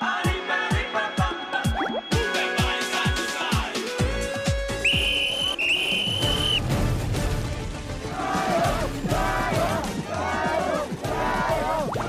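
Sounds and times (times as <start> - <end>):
background music with regular beat: 0.0 - 5.2, 6.1 - 12.0
whistle blasts: 4.8 - 6.7.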